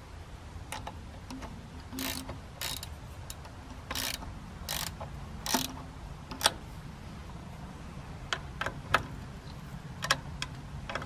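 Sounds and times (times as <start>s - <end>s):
hand ratchet clicking: 0.7s - 6.6s
light metal clicks: 8.3s - 11.0s.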